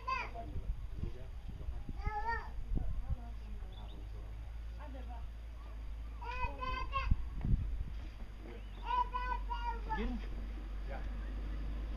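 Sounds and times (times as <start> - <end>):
steady low rumble: 0.4 - 11.9.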